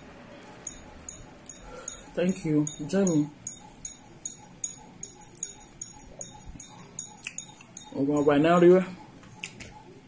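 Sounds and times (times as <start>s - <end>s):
person speaking: 2.1s - 3.4s.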